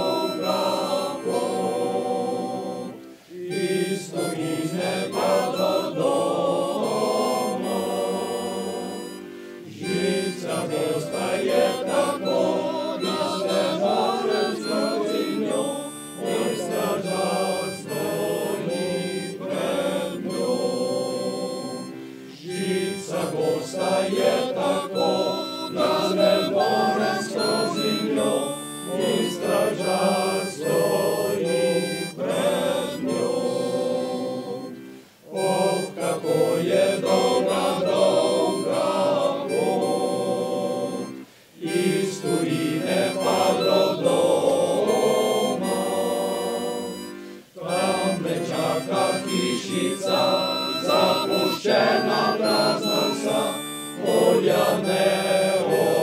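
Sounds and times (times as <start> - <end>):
accordion: 0.0 - 56.0
men's choir singing: 0.0 - 56.0.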